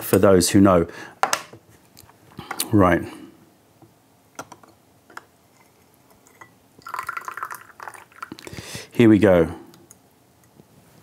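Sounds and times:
tea trickling and dripping: 6.1 - 8.7.

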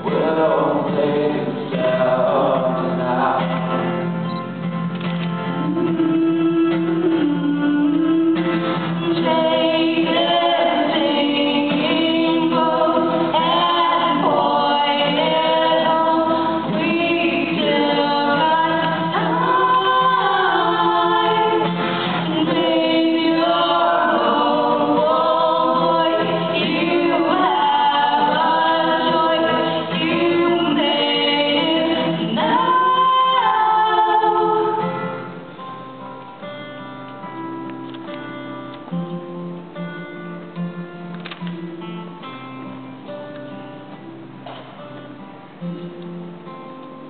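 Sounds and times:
person singing live: 0.0 - 4.2, 5.4 - 35.8
acoustic guitar: 0.0 - 47.0.

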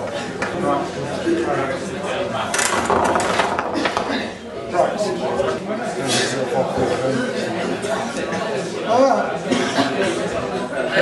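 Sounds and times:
voices in room: 0.0 - 11.0
ping pong balls clattering: 1.8 - 5.6.

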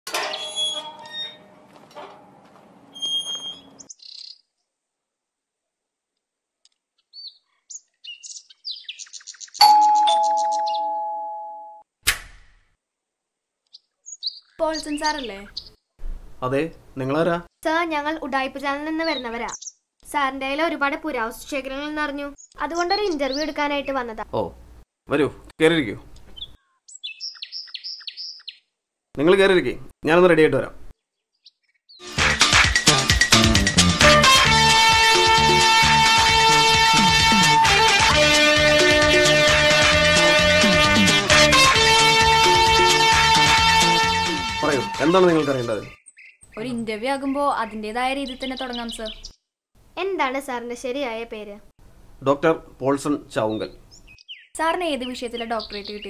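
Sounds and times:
high bird-like chirps: 3.0 - 4.4, 7.1 - 11.2, 13.7 - 15.8, 19.0 - 19.8, 26.3 - 28.7, 45.9 - 46.7, 53.9 - 56.0
doorbell bird-like chirps: 9.6 - 11.8
two-note doorbell ding-dong: 9.6 - 11.8.

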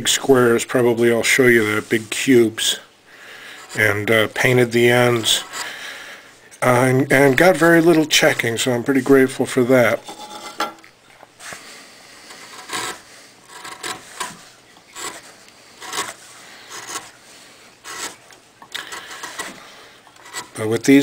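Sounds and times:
gouge scraping through wood: 3.5 - 5.8, 11.4 - 21.0.

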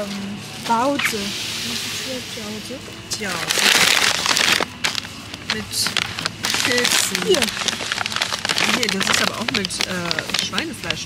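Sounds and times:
plastic packaging crinkling: 3.1 - 11.0.

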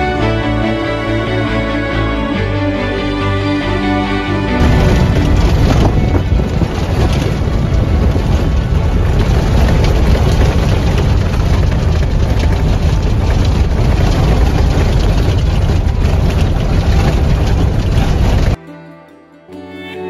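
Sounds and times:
vehicle engine running: 0.0 - 18.6
tyres rumbling on gravel: 4.3 - 18.6.

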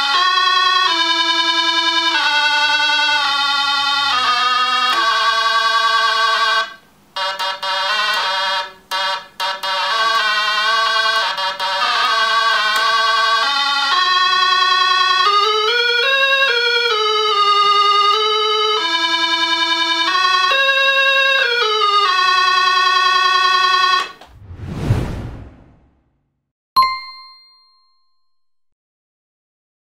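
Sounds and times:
whoosh: 24.2 - 26.2
ringing ding: 26.8 - 28.4.

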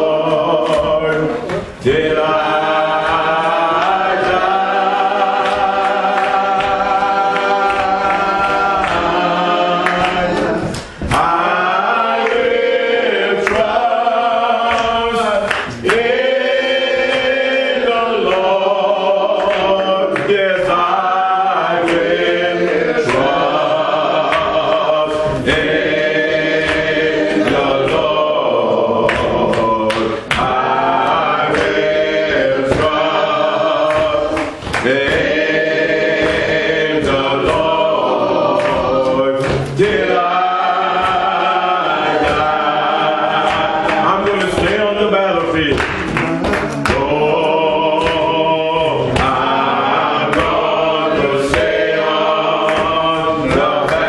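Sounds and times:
man singing a hymn: 0.0 - 54.0.

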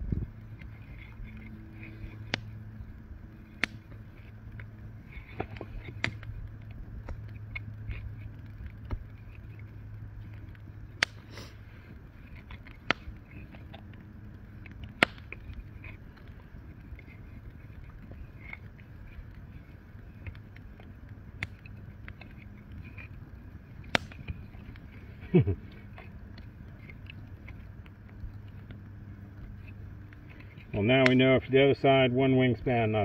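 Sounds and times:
cord rubbing on poles: 0.0 - 31.3
low steady hum: 0.0 - 33.0.

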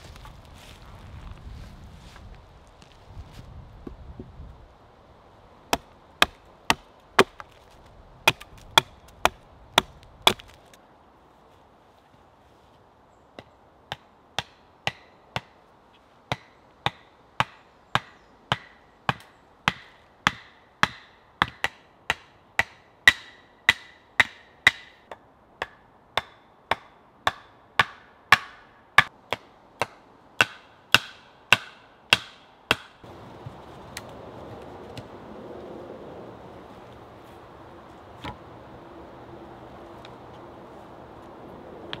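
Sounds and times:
axe striking wooden stake: 5.7 - 7.6, 8.3 - 10.7, 16.3 - 33.0.

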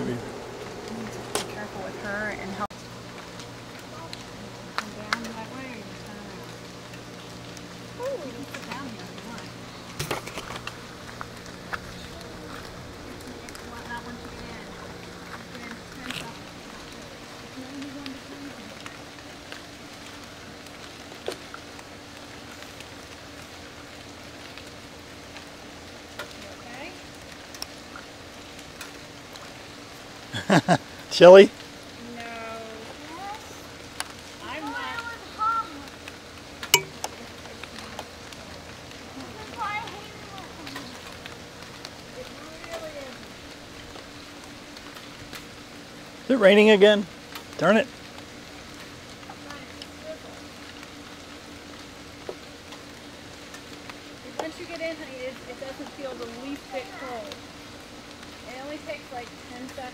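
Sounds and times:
faint voices: 0.0 - 2.7, 11.4 - 19.3
steady low hum: 0.0 - 35.1
outdoor hiss: 0.0 - 59.9
faint clicks or water sounds: 15.2 - 26.4, 27.2 - 29.6, 35.8 - 45.5.

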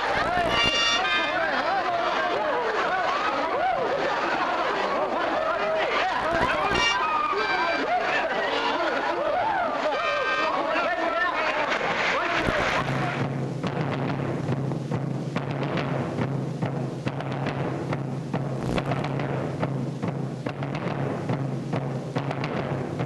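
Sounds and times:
many voices shouting: 0.0 - 13.2.

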